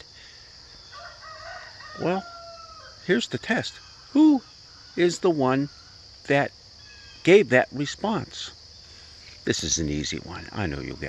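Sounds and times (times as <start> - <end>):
chorus of crickets: 0.0 - 11.0
faint rooster crowing: 0.8 - 3.1.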